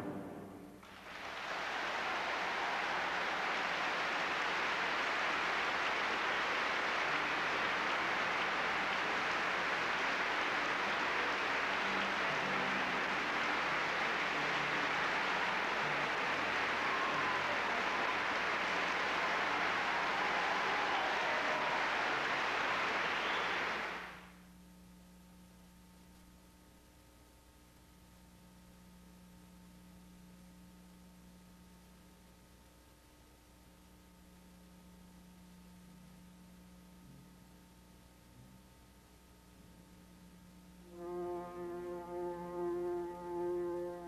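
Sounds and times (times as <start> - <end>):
large audience applauding: 0.8 - 24.3.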